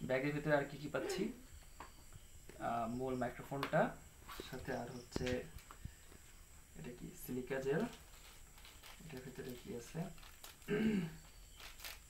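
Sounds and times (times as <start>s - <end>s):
man speaking: 0.0s - 1.4s, 2.6s - 5.6s, 6.8s - 8.0s, 9.0s - 10.2s.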